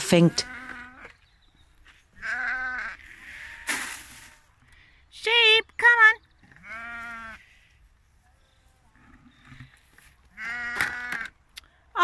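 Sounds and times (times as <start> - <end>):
lamb bleating: 0.2 - 1.2, 2.2 - 3.7, 6.5 - 7.4, 10.4 - 11.3.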